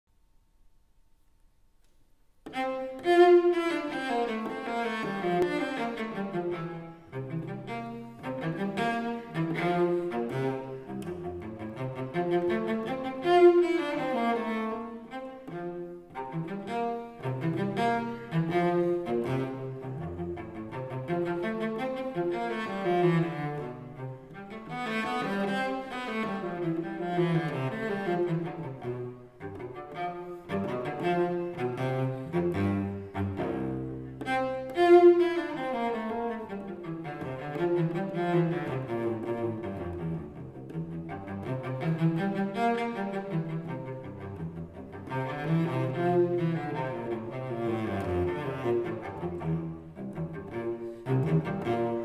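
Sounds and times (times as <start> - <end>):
bowed cello: 2.2 - 52.0.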